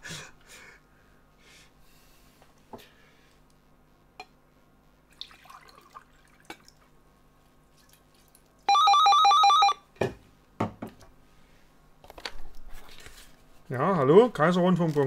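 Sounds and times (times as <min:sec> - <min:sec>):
warbling telephone ringtone: 0:08.7 - 0:09.8.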